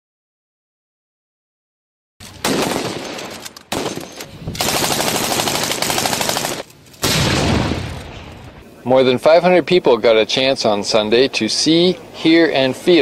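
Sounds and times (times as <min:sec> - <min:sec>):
machine gun automatic fire: 0:02.3 - 0:08.1.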